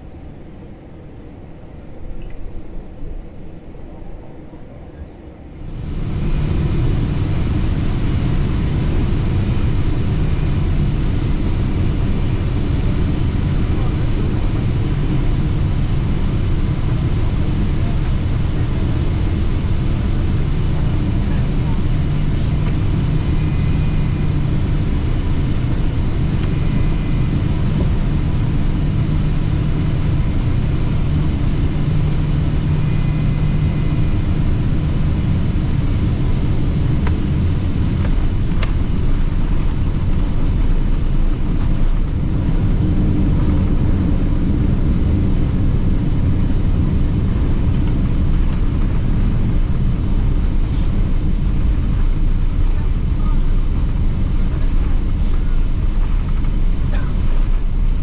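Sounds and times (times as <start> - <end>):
airliner cabin engine noise: 0.0 - 58.0
airliner touching down and rolling: 5.8 - 58.0.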